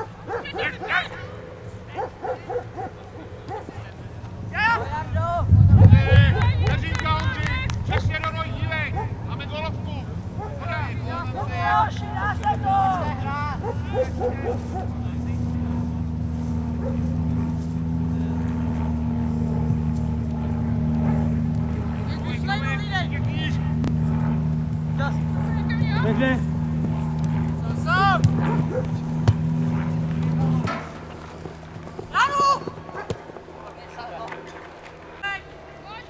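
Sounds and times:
low mechanical hum: 0:00.0 - 0:36.0
people shouting: 0:04.5 - 0:15.2, 0:32.1 - 0:33.2.

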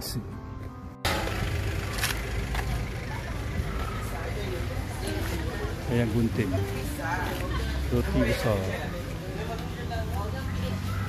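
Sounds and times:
faint voices: 0:02.2 - 0:11.0.

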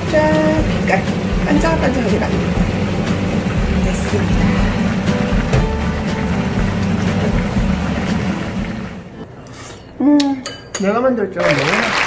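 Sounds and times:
pan boiling with low rumble: 0:00.0 - 0:09.2.

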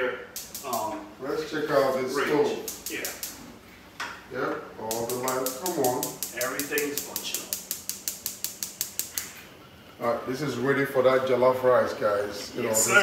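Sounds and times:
gas igniter clicking rapidly: 0:00.3 - 0:00.8, 0:02.6 - 0:03.4, 0:04.9 - 0:09.4.

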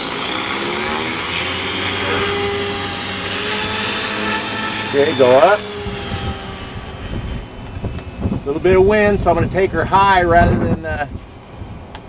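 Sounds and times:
rc helicopter motor whine: 0:00.0 - 0:12.0.

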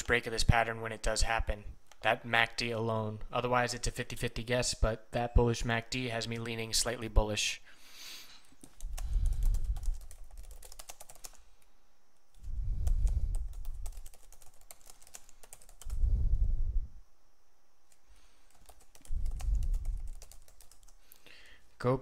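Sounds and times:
keyboard typing: 0:08.4 - 0:16.0, 0:17.9 - 0:21.2.

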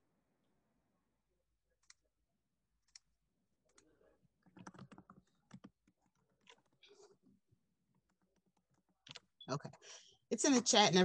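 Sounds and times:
faint typing on a keyboard: 0:02.8 - 0:09.9.

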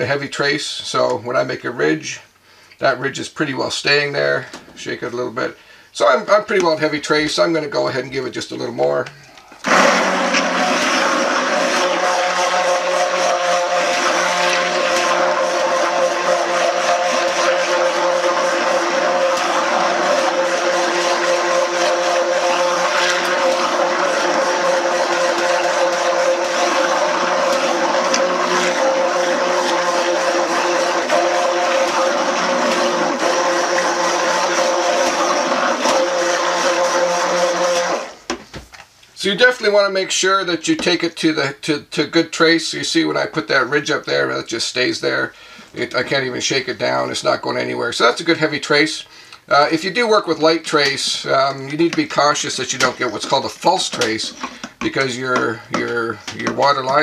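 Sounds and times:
immersion blender running: 0:09.6 - 0:38.3.

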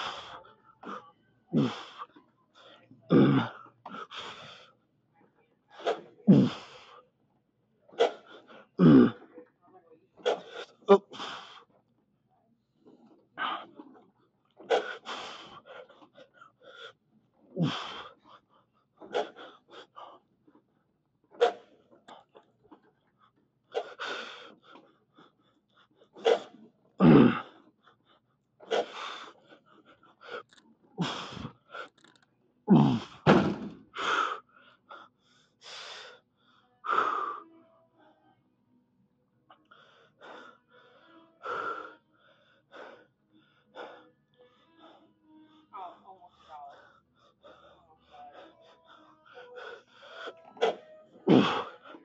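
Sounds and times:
strained grunts: 0:00.0 - 0:04.7, 0:05.7 - 0:07.0, 0:07.9 - 0:09.5, 0:10.2 - 0:11.6, 0:13.0 - 0:14.0, 0:14.6 - 0:16.9, 0:17.5 - 0:18.3, 0:19.0 - 0:20.1, 0:21.3 - 0:22.4, 0:26.2 - 0:27.7, 0:28.6 - 0:29.3, 0:30.2 - 0:34.4, 0:49.6 - 0:52.0
man breathing hard: 0:00.0 - 0:04.8, 0:10.3 - 0:11.8, 0:14.6 - 0:17.0, 0:17.6 - 0:20.2, 0:23.2 - 0:32.1, 0:33.9 - 0:37.4, 0:39.6 - 0:45.6, 0:46.3 - 0:52.0.

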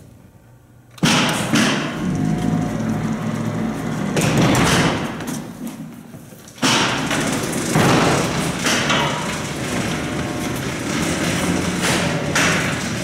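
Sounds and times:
sharp knocks: 0:06.6 - 0:09.3
elevator doors rattling clatter: 0:06.6 - 0:13.0.

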